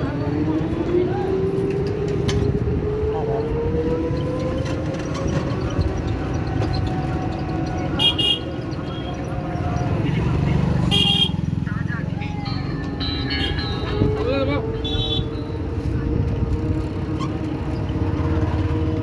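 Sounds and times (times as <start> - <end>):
voices: 0.0 - 18.7
steady traffic rumble: 0.0 - 19.0
vehicle horn toots: 8.0 - 9.2, 10.9 - 11.4, 14.8 - 15.4.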